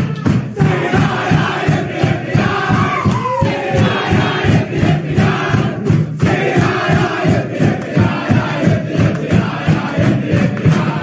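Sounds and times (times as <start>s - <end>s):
crowd chanting: 0.0s - 11.0s
low thumping beat: 0.0s - 11.0s.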